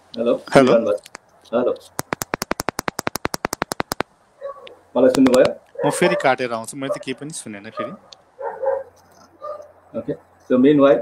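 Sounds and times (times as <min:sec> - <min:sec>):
rapid microphone clicking crackle: 0:00.9 - 0:05.8.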